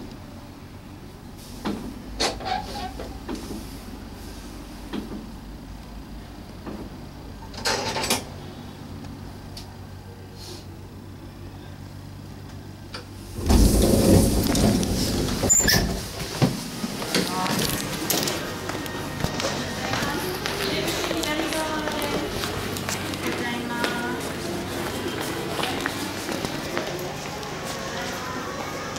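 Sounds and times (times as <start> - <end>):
loud rumbling rattle: 13.1 - 16.8
cabin door sliding open: 13.2 - 17.8
footsteps: 13.4 - 28.8
indistinct voices: 17.1 - 28.9.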